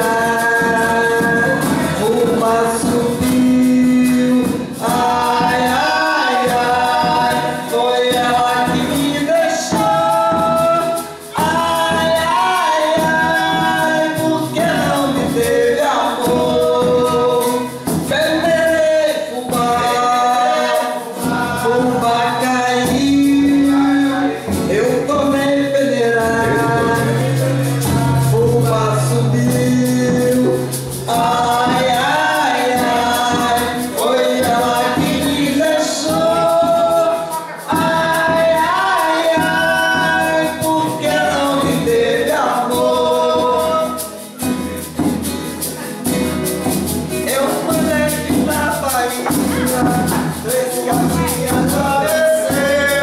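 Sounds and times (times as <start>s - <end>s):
woman and man singing together: 0.0s - 45.1s, 47.1s - 53.0s
hand drum beating: 0.0s - 53.0s
shaker: 0.0s - 53.0s
strummed acoustic guitar: 0.0s - 53.0s.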